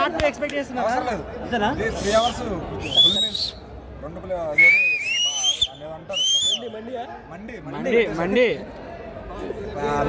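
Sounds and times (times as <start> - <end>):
crowd whistling: 2.2 - 3.7, 4.6 - 6.8
low background voices: 6.8 - 10.0.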